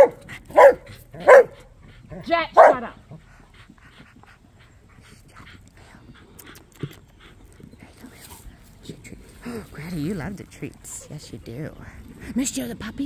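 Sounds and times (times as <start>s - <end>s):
dog panting: 0.0s - 12.6s.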